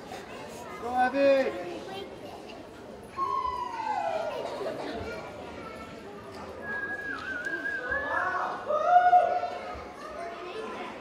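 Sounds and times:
children's voices: 0.0 - 0.9, 1.6 - 11.0.

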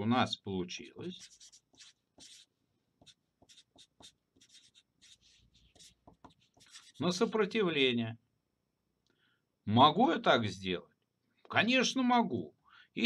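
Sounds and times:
marker writing on paper: 0.8 - 7.5.

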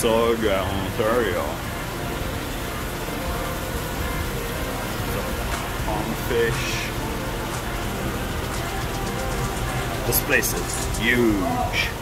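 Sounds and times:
aquarium pumps and filters: 0.0 - 12.0
faint music: 0.0 - 12.0
running water hiss: 0.0 - 12.0.

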